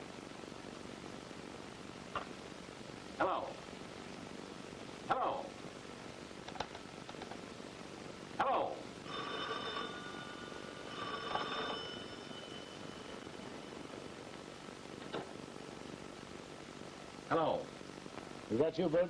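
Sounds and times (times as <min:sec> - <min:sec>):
old telephone bell ringing: 0:09.0 - 0:14.1.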